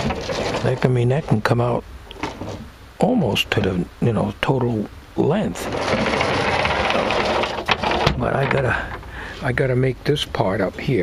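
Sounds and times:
wooden tray sliding on metal tracks: 0:00.0 - 0:01.5, 0:05.5 - 0:09.6.

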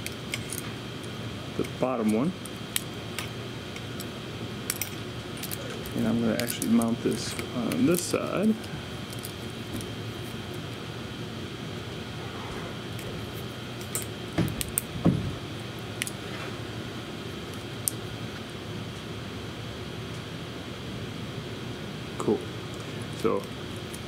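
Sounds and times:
steady background hum: 0:00.0 - 0:24.0
metallic clicks from pliers and wire: 0:04.7 - 0:08.2.

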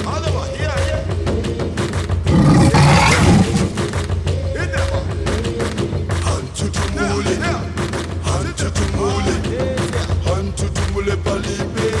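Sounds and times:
background music: 0:00.0 - 0:12.0
lioness snarling: 0:02.3 - 0:04.0.

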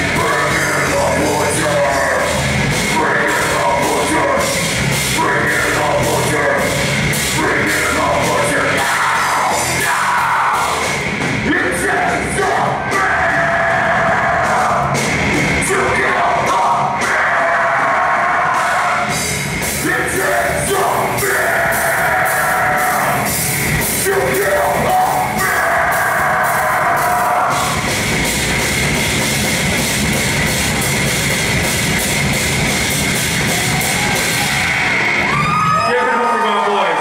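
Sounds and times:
heavy metal band playing: 0:00.0 - 0:37.0
vocalist yelling: 0:07.4 - 0:10.8, 0:19.8 - 0:23.3, 0:24.0 - 0:27.8.

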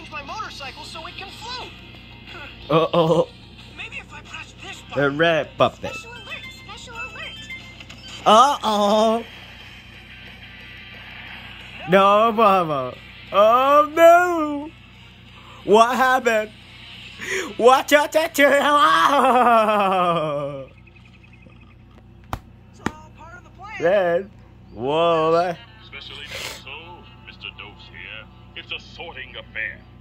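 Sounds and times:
cartoon soundtrack on tv: 0:00.0 - 0:30.0
low hum: 0:18.5 - 0:25.9.

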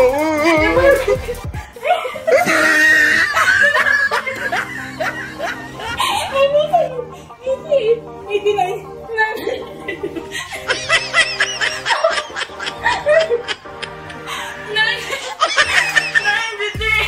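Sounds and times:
background music: 0:00.0 - 0:17.0
woman laughing: 0:00.2 - 0:16.8.

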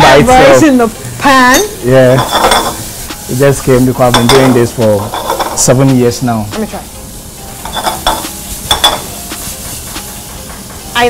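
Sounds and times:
food sizzling in a pan: 0:00.0 - 0:11.0
metallic clinks of pan and utensil: 0:01.5 - 0:02.9, 0:07.6 - 0:09.1.

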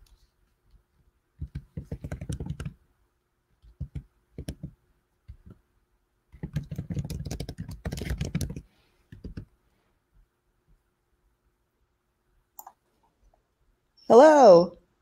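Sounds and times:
typing on computer keyboard: 0:01.4 - 0:02.8, 0:06.4 - 0:09.5.

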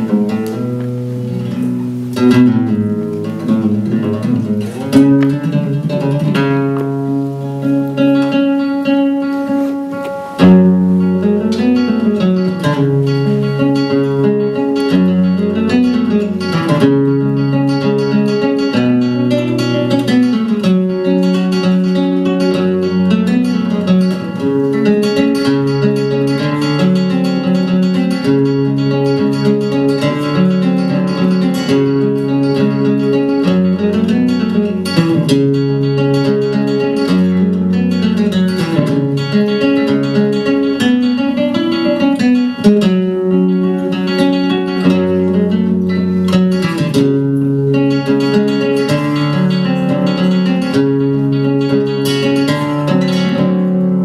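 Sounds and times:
solo flamenco guitar: 0:00.0 - 0:54.0.

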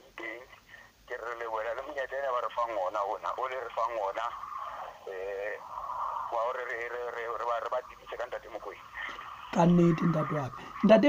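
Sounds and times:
person talking over telephone: 0:00.0 - 0:05.7, 0:06.3 - 0:11.0.

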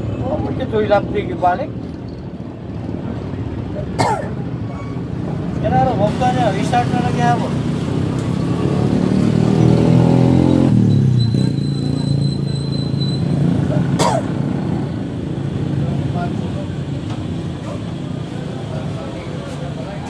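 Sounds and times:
traffic: 0:00.0 - 0:20.0
motorcycle engine passing: 0:06.3 - 0:12.1.

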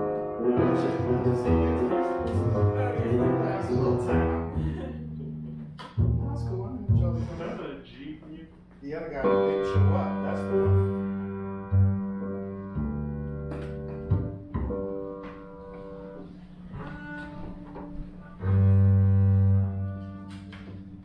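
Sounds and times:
double bass notes: 0:00.0 - 0:07.6, 0:09.2 - 0:21.0
piano chords: 0:00.0 - 0:07.6, 0:08.9 - 0:21.0.

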